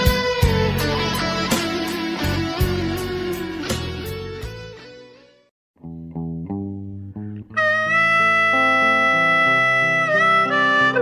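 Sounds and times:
bass line: 0:00.0 - 0:04.8, 0:05.8 - 0:11.0
picked blues guitar: 0:00.0 - 0:11.0.

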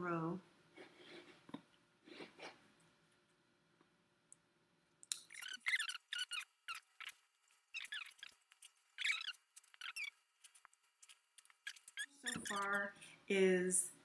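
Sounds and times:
stems squeaking in floral foam: 0:05.2 - 0:13.1.

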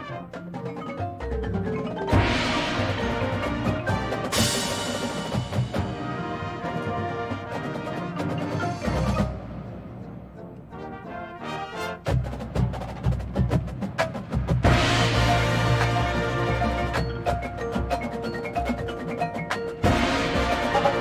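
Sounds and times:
drum and bugle corps playing: 0:00.0 - 0:00.4, 0:02.1 - 0:09.9, 0:10.7 - 0:21.0.

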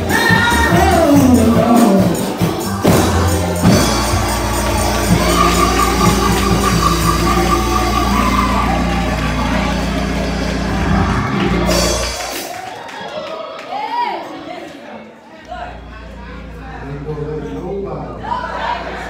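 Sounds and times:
choir singing gospel song: 0:00.0 - 0:12.5, 0:15.5 - 0:19.0
instrumental backing: 0:00.0 - 0:12.6.

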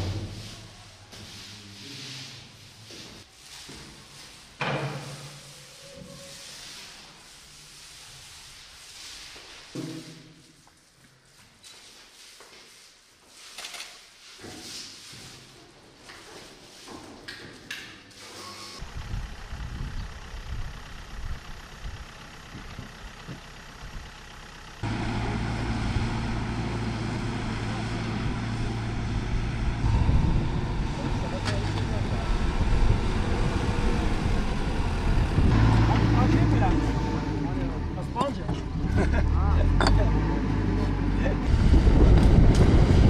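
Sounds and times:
diesel engine running: 0:18.8 - 0:43.0
low uneven rumbling: 0:18.8 - 0:43.0.

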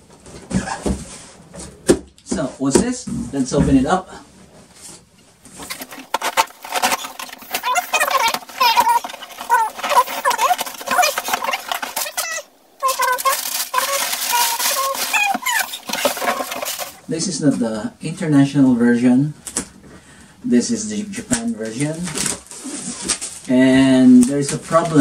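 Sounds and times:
packing paper rustling: 0:05.4 - 0:17.1, 0:21.6 - 0:23.5
squeaky scraping: 0:05.5 - 0:17.0.

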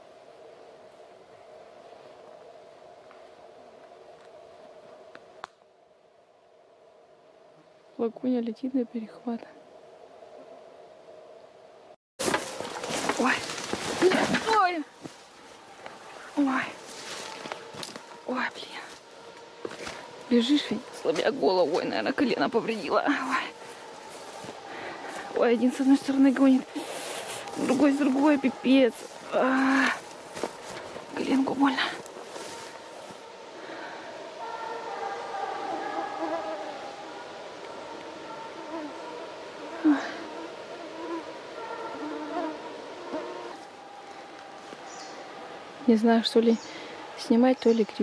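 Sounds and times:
quiet forest background: 0:00.0 - 0:48.0
person running through undergrowth: 0:12.2 - 0:21.9, 0:23.1 - 0:28.4, 0:29.0 - 0:33.2
fly buzzing: 0:12.2 - 0:45.8
brush swishing: 0:23.2 - 0:33.3
pained exclamation: 0:26.7 - 0:30.1.

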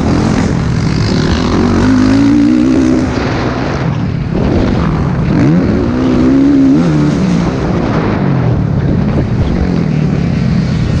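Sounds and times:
motocross bike engine revving: 0:00.0 - 0:11.0
steady rush of noise: 0:00.0 - 0:11.0.

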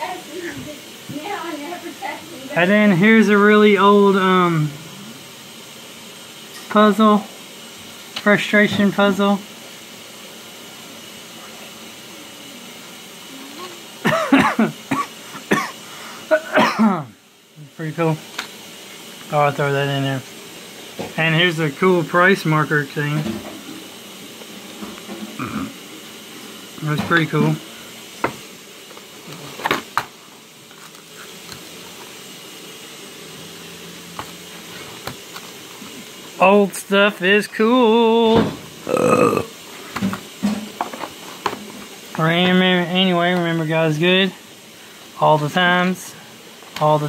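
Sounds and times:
man laughing: 0:14.0 - 0:17.1.

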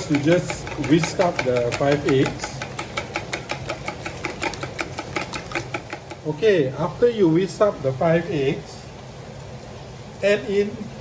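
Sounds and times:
whisk beating eggs in bowl: 0:00.0 - 0:06.4.

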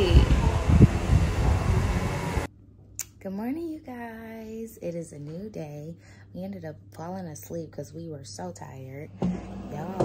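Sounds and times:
wind buffeting microphone: 0:00.0 - 0:02.5.

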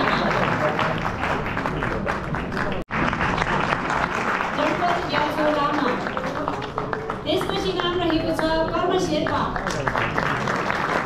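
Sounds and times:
audience applauding: 0:00.0 - 0:11.0.

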